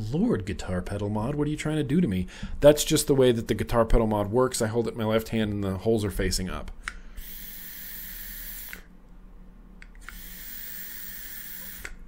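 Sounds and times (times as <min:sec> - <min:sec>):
hissing vape drag: 0:07.2 - 0:08.9, 0:10.0 - 0:12.0.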